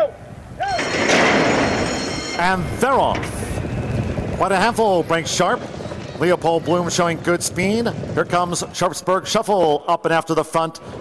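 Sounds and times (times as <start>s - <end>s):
starting gate doors clashing open: 0.6s - 3.9s
electric bell ringing: 1.6s - 2.8s.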